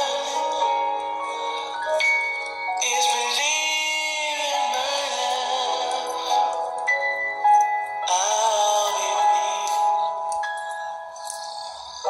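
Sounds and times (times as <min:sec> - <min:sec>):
backing music: 0:00.0 - 0:12.0
man singing a long note: 0:08.1 - 0:10.1.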